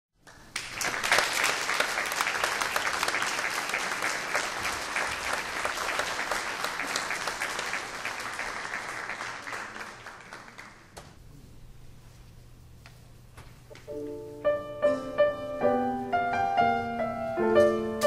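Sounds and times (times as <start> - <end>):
audience applauding: 0.2 - 11.0.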